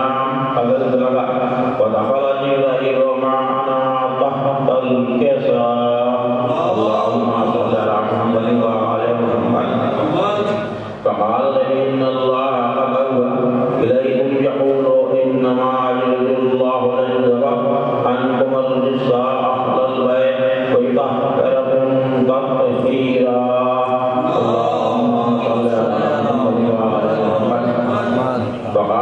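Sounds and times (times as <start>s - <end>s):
man chanting into a microphone: 0.0s - 29.0s.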